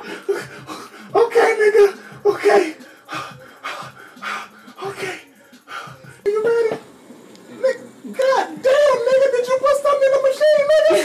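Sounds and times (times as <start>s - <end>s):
man panting hard: 0.0s - 6.3s.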